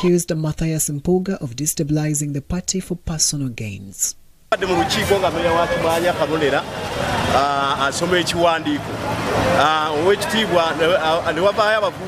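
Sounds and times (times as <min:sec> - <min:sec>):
street traffic noise: 0:00.0 - 0:03.8, 0:04.4 - 0:12.0.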